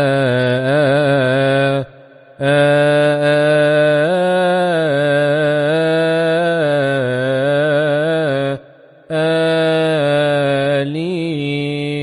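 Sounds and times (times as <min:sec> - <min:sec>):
man chanting solo: 0:00.0 - 0:12.0.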